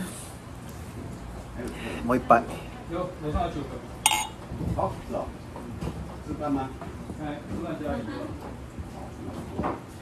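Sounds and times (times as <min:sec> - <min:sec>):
bottle clinking against glass: 0:04.1 - 0:04.4.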